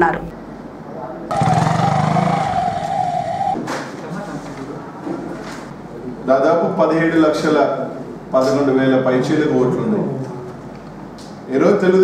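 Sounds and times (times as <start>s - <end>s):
low pulsing buzz: 1.3s - 3.6s
short noisy burst: 1.3s - 3.6s
steady high tone: 1.3s - 3.6s.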